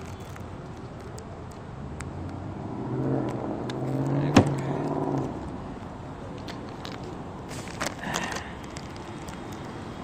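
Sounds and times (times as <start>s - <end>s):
car engine driving up: 1.8s - 5.8s.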